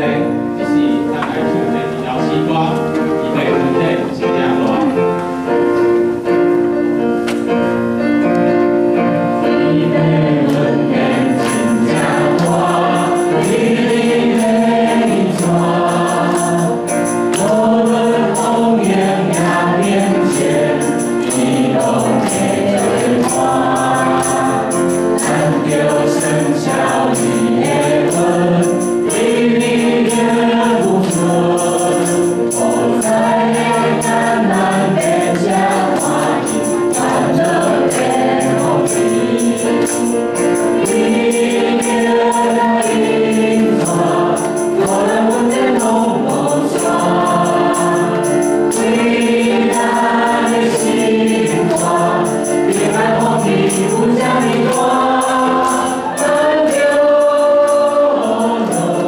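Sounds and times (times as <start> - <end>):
group singing worship song: 0.0 - 59.0
piano accompaniment: 0.0 - 59.0.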